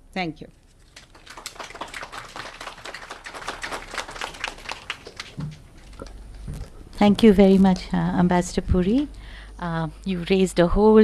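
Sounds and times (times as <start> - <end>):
audience applauding: 1.0 - 6.0.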